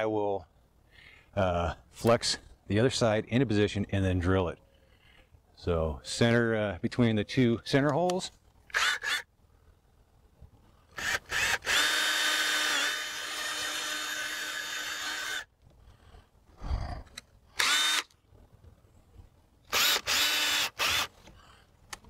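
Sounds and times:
cordless drill boring aluminum: 0:08.7 - 0:09.3, 0:10.9 - 0:15.5, 0:17.6 - 0:18.1, 0:19.7 - 0:21.2.

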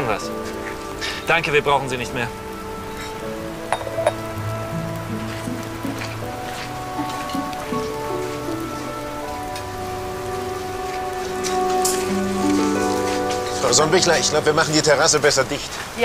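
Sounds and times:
rain falling: 0:00.0 - 0:16.0
soft background music: 0:00.0 - 0:16.0.

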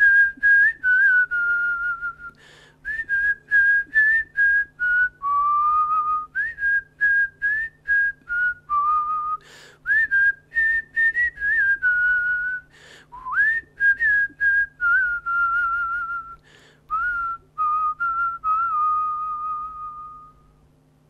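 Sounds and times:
person whistling a slow melody: 0:00.0 - 0:20.6
steady low hum: 0:00.0 - 0:21.0.

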